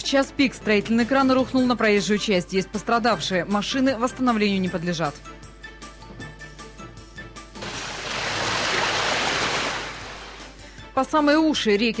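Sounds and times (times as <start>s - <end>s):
car splashing through deep water: 7.6s - 10.6s.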